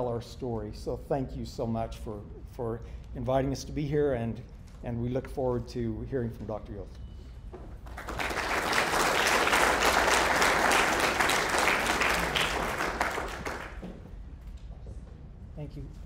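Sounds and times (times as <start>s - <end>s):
audience applauding: 7.8s - 14.0s.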